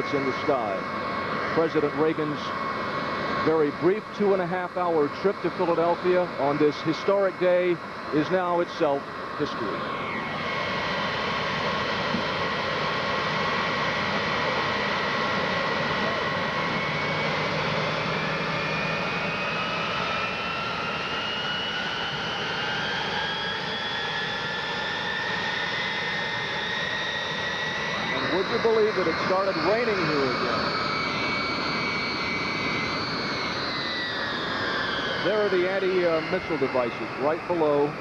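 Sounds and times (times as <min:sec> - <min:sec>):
jet engines roaring and whining: 0:00.0 - 0:38.0.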